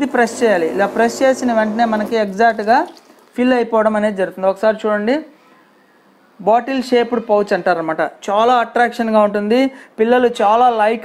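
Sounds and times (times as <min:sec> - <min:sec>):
person talking: 0:00.0 - 0:05.3.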